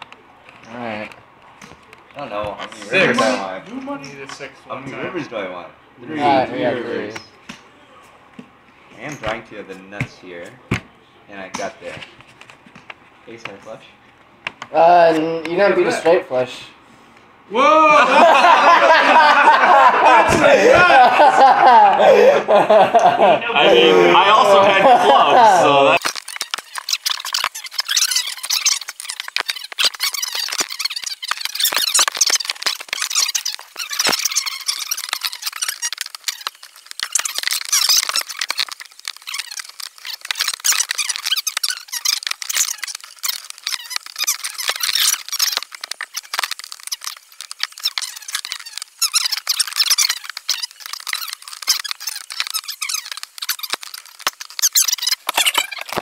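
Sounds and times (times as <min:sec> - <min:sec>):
sped-up squeaky chatter: 0:26.0 - 0:55.9.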